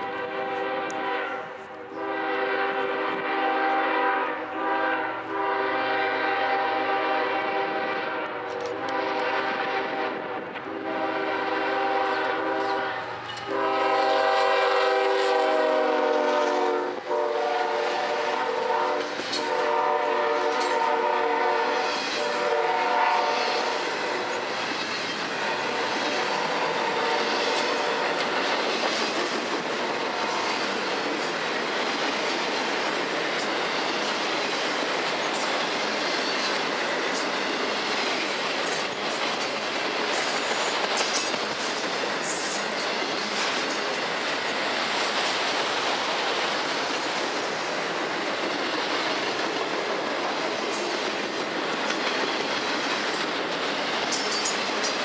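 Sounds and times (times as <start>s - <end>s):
locomotive air horn blasts: 0.0s - 24.4s, 25.4s - 28.4s
train cars rumbling: 0.0s - 55.0s.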